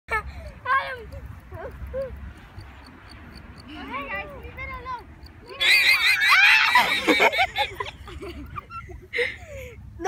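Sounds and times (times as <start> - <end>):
llama alarm call squeals: 5.5 - 7.0.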